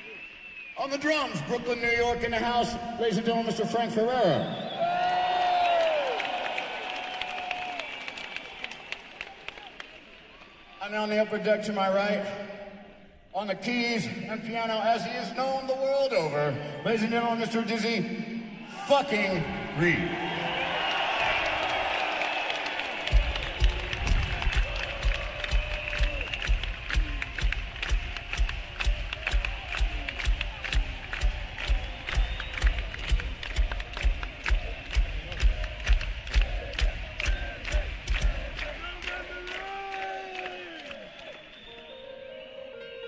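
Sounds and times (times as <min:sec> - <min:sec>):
crowd cheering and clapping: 0:04.7 - 0:11.0, 0:19.0 - 0:42.1
steady kick-drum beat: 0:23.0 - 0:39.4.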